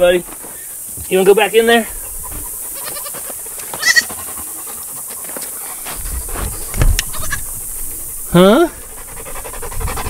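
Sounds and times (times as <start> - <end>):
goat kid bleating: 2.7 - 4.2, 7.1 - 7.5.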